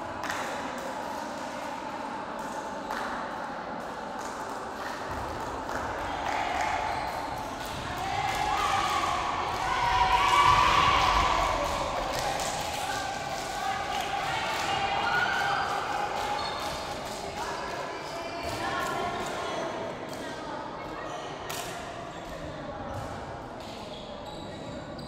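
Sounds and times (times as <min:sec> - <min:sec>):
girls shouting and cheering: 0:07.8 - 0:16.2.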